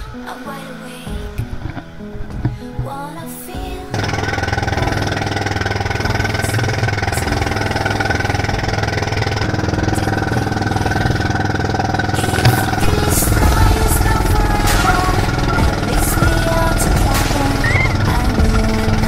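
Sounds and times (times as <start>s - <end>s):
boat engine running: 3.9s - 19.0s.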